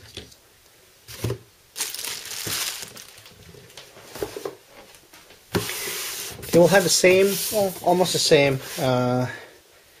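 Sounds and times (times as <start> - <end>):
cardboard rustling and scraping: 5.5 - 9.0.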